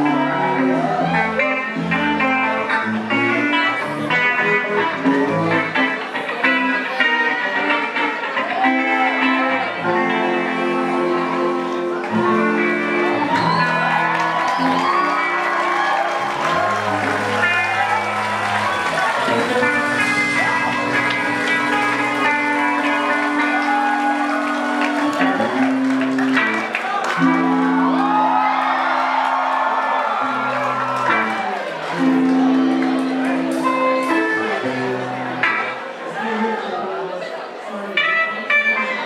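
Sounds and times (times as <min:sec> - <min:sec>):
crowd cheering and whooping: 0:00.0 - 0:02.7, 0:07.5 - 0:34.8
electric guitar: 0:00.0 - 0:37.2, 0:37.8 - 0:39.0
drums: 0:12.0 - 0:29.6
bass guitar held notes: 0:16.2 - 0:28.4.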